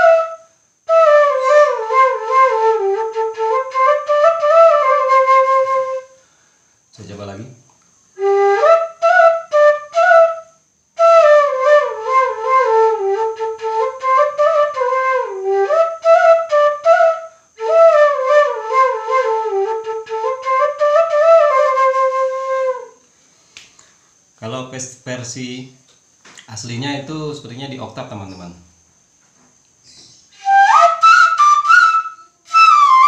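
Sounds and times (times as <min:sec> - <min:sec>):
bamboo flute melody: 0:00.0 - 0:06.2, 0:08.2 - 0:23.0, 0:30.3 - 0:33.0.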